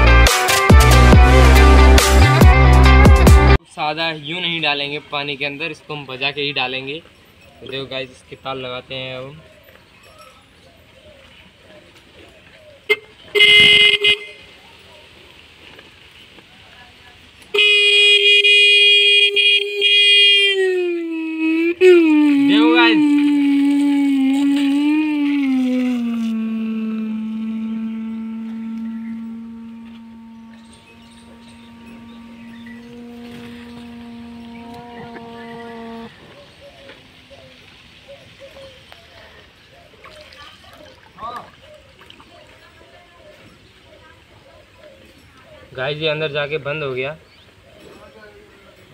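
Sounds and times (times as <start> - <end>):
small electric horn honking: 12.9 - 14.4, 17.5 - 36.3.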